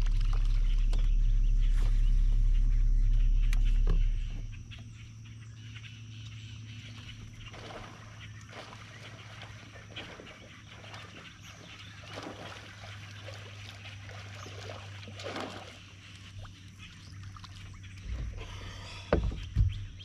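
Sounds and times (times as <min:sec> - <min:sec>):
electric motor humming: 0:00.0 - 0:05.2
faint chirps and clicks: 0:00.0 - 0:20.0.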